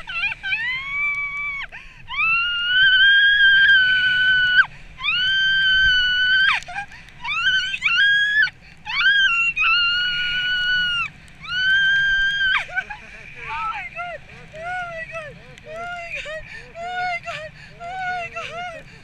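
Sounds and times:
woman screaming with joy: 0:00.0 - 0:18.8.

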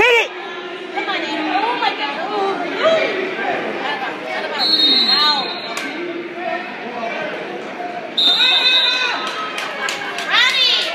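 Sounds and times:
spectators shouting and chattering: 0:00.0 - 0:10.9.

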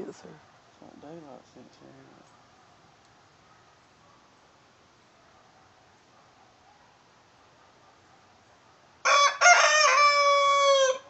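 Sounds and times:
rooster crowing: 0:09.0 - 0:11.0.

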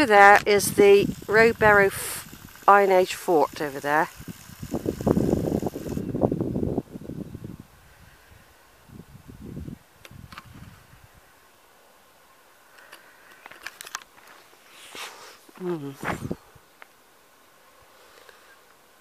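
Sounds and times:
wind buffeting microphone: 0:00.0 - 0:02.8, 0:03.4 - 0:11.2, 0:16.0 - 0:16.6
faint ticks: 0:18.1 - 0:18.8.

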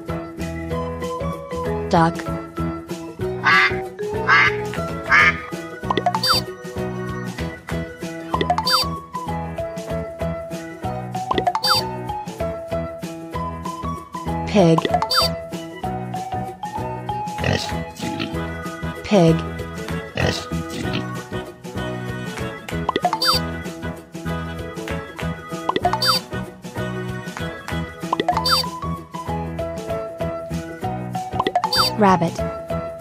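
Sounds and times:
light background music: 0:00.0 - 0:33.0
duck quacking: 0:03.4 - 0:05.5, 0:25.9 - 0:26.2
pig grunting: 0:17.4 - 0:18.4, 0:20.1 - 0:21.2.

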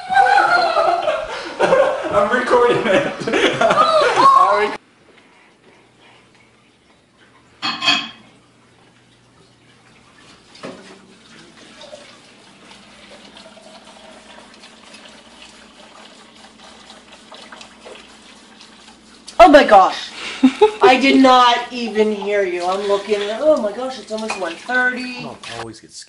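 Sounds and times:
faucet running into sink: 0:09.2 - 0:20.0, 0:20.6 - 0:25.6.

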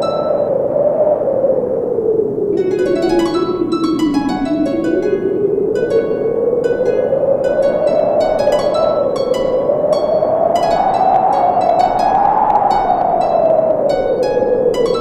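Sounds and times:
harp music: 0:00.0 - 0:00.6, 0:02.5 - 0:15.0.

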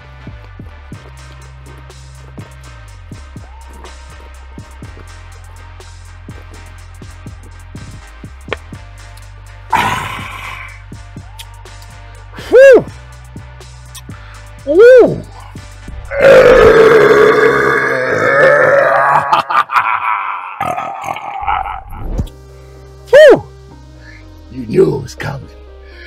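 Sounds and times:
music beat: 0:00.0 - 0:16.2
man burping loudly: 0:09.7 - 0:10.7, 0:16.0 - 0:22.0.

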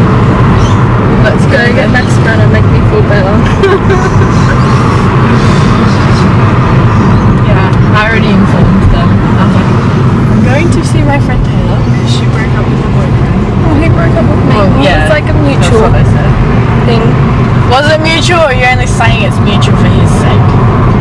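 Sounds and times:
car cabin road rumble: 0:00.0 - 0:21.0.

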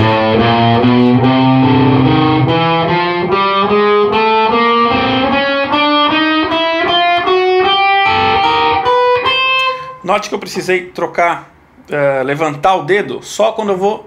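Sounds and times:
electric guitar picked notes: 0:00.0 - 0:10.0.

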